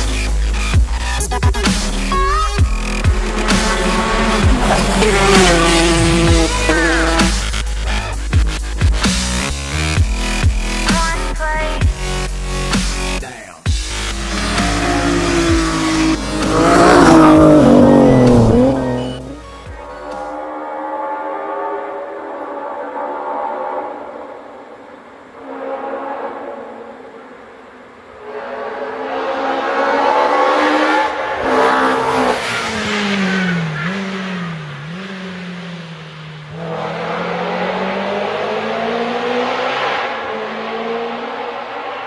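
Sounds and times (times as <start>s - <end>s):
rally car engine at full throttle: 0.0s - 42.0s.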